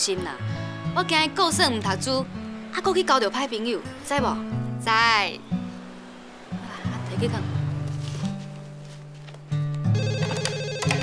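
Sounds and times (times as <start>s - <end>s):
background music: 0.0s - 11.0s
telephone electronic trill ringing: 9.9s - 11.0s.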